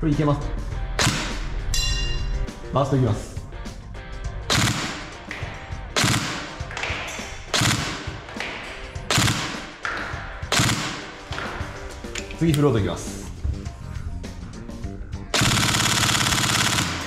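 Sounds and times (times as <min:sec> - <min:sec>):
airsoft gun firing bursts: 0:04.5 - 0:05.0, 0:06.0 - 0:06.6, 0:07.5 - 0:08.1, 0:09.1 - 0:09.8, 0:10.5 - 0:11.1, 0:15.4 - 0:17.0.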